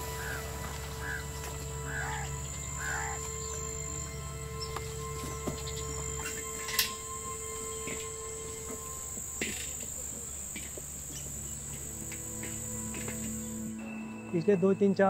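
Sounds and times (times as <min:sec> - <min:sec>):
insect chirring: 0:00.0 - 0:13.8
soft music drone: 0:00.0 - 0:15.0.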